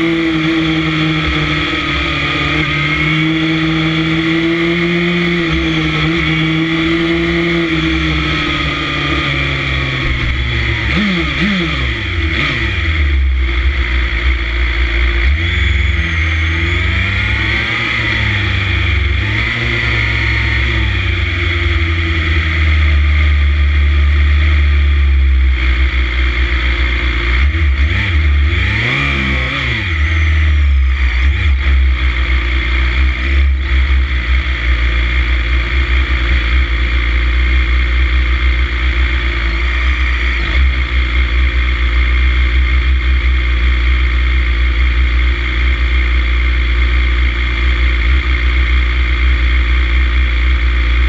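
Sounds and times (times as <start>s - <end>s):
motorcycle engines idling and revving: 0.0s - 51.0s.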